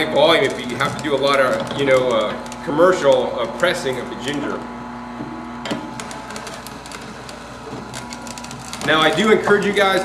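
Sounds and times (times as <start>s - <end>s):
ginger crackling in juicer: 0.0s - 10.0s
juicer motor humming: 0.0s - 10.0s.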